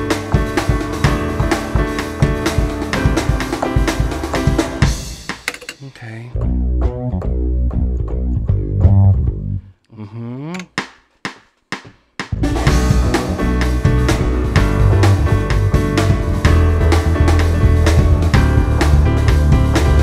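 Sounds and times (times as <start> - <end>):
drum kit and guitar music: 0.0 - 5.8, 10.8 - 20.0
low bass notes: 6.3 - 9.7, 12.4 - 20.0.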